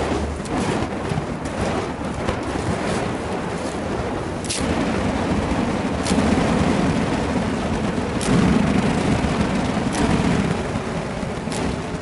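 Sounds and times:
whoosh of flame through air: 0.0s - 12.0s.

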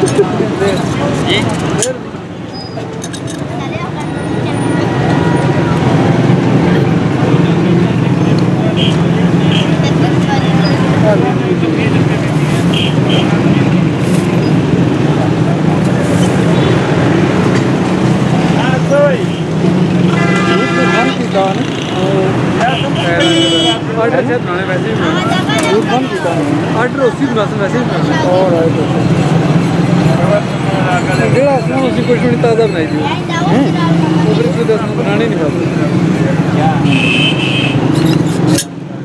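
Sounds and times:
street traffic: 0.0s - 39.0s
vehicle horn toot: 20.1s - 21.3s, 22.6s - 23.8s, 36.8s - 37.9s.

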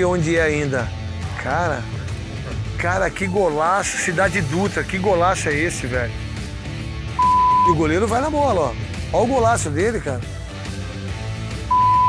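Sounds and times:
quiet background music: 0.0s - 12.0s
censor bleep: 7.2s - 7.8s, 11.7s - 12.0s.

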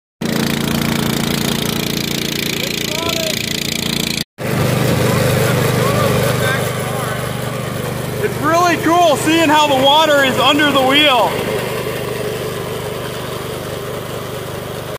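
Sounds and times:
small boat engine running: 0.2s - 14.9s.

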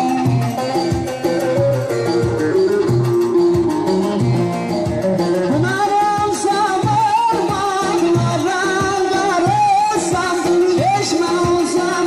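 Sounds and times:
instrumental accompaniment: 0.0s - 12.0s
man singing ornamented melody: 5.4s - 12.0s.

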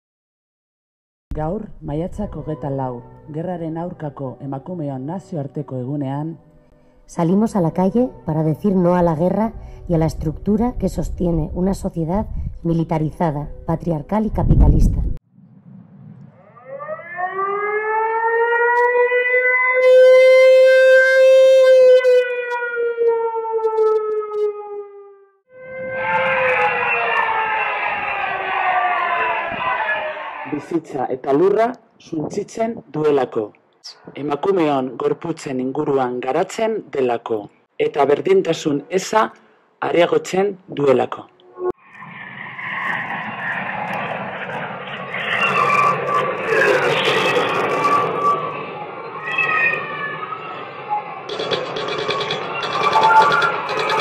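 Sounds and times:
second siren tone: 15.3s - 30.5s, 41.4s - 54.0s
siren winding up and down: 16.2s - 30.7s, 41.4s - 54.0s
aircraft engine drone: 25.6s - 29.4s, 41.8s - 54.0s.

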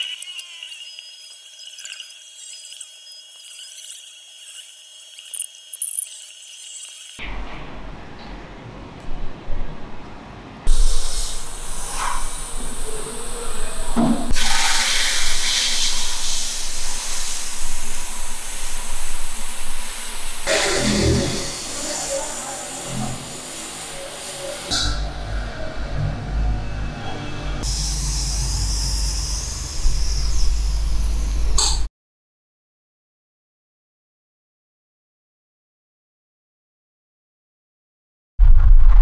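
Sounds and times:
paint spray gun hissing: 0.0s - 7.2s, 10.7s - 24.7s, 27.6s - 31.8s
sandblast gun hissing: 10.7s - 24.7s, 27.6s - 31.4s.

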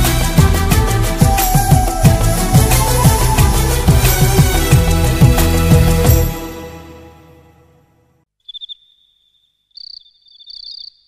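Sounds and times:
song music: 0.0s - 8.2s
cricket chirping: 8.4s - 11.0s.

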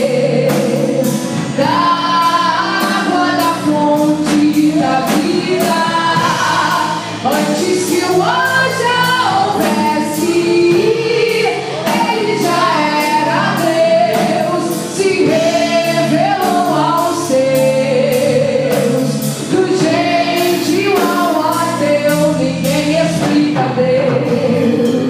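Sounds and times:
drum kit: 0.0s - 25.0s
electric bass: 0.0s - 25.0s
keyboard: 0.0s - 25.0s
woman singing: 0.0s - 25.0s.

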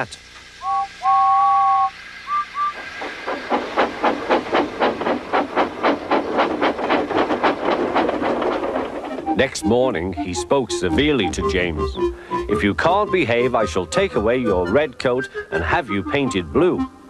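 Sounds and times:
steam locomotive chuffing: 0.0s - 17.0s
steam locomotive whistle: 0.6s - 3.0s.

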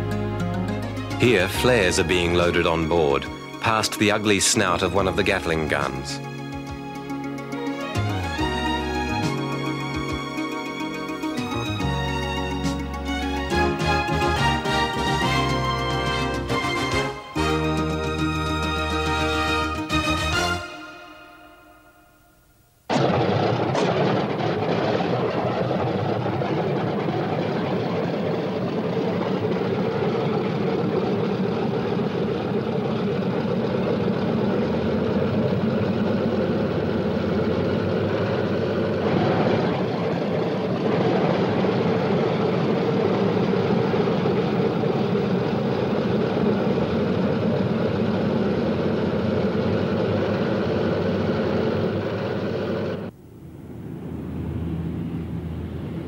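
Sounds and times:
propeller aircraft engines droning: 0.0s - 56.0s.

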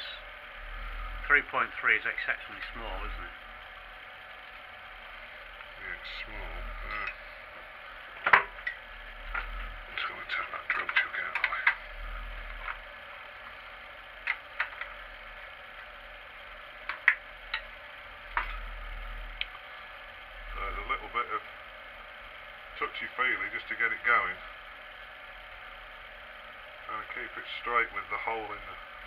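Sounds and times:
low steady hum: 0.0s - 29.0s.

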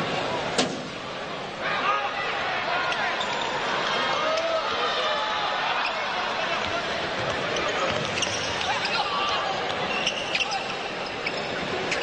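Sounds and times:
arena crowd murmur: 0.0s - 12.0s
sneaker squeaks: 7.2s - 12.0s.

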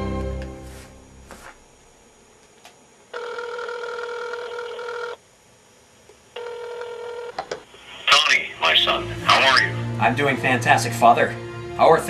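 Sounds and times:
telephone ringing: 3.1s - 5.2s, 6.4s - 7.4s.

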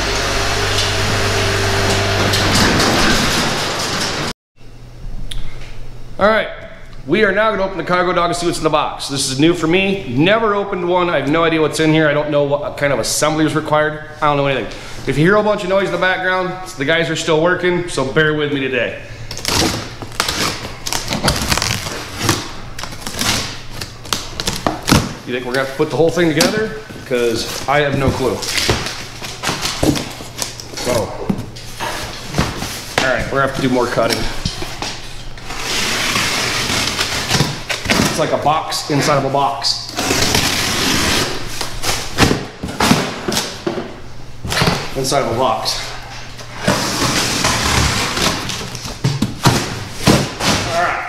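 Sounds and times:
cardboard scraping and sliding: 46.5s - 48.6s.

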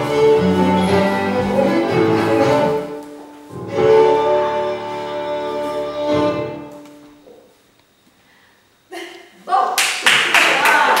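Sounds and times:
people clapping: 9.7s - 11.0s.

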